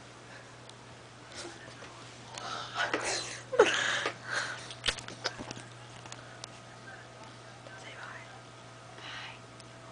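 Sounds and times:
steady low hum: 0.0 - 9.9
faint whisper: 6.1 - 9.5.

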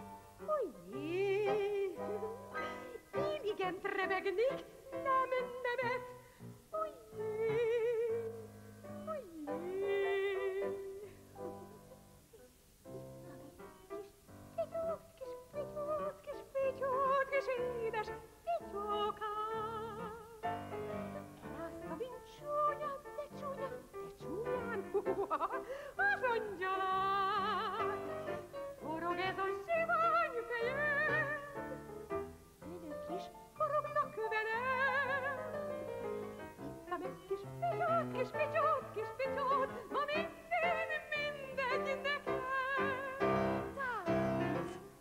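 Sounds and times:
piano accompaniment: 0.0 - 45.0
woman singing operetta: 0.0 - 45.0.

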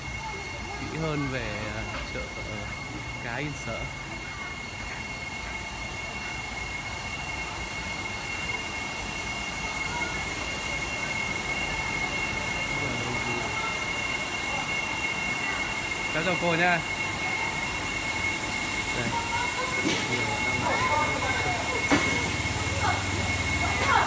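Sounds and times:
faint voices: 0.0 - 24.0
high whining tones: 0.0 - 24.0
machine drone: 0.0 - 24.0.

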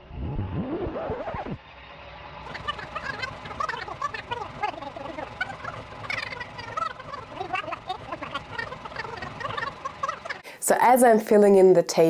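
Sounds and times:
sped-up high-pitched chattering: 2.4 - 10.5.

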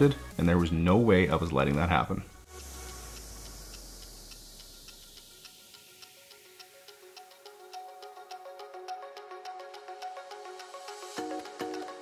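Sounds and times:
faint background music: 0.0 - 12.0
low hum: 2.3 - 6.0
pressure washer spray hissing: 2.4 - 6.1.

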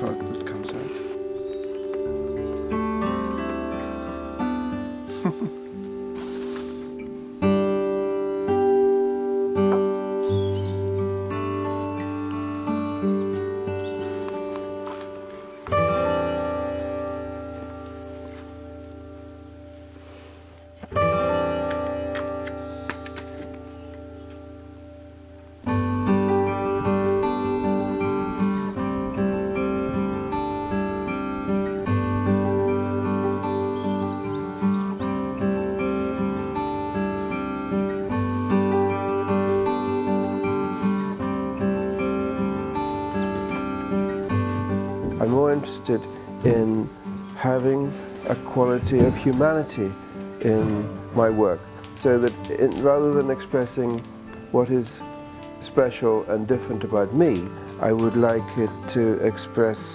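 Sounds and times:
acoustic guitar strumming and picking: 0.0 - 59.9.

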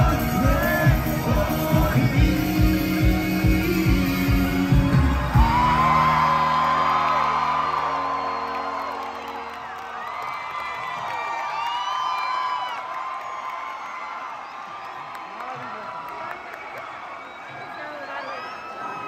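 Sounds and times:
rock band playing live: 0.0 - 7.4
crowd cheering: 0.0 - 19.0.

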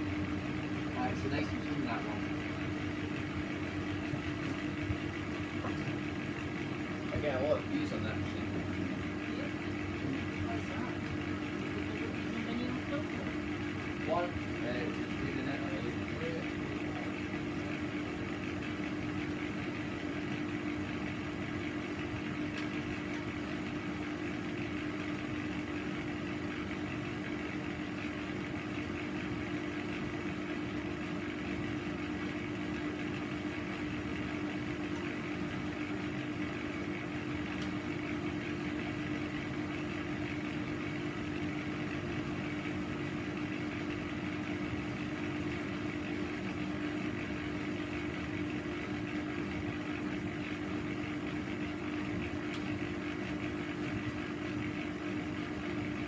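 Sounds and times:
washing machine motor hum: 0.0 - 56.0.

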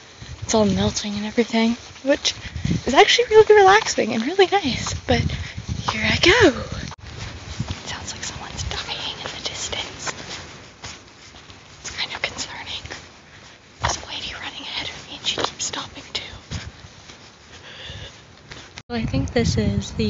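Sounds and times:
breathy whisper-like breathing: 17.4 - 18.7.

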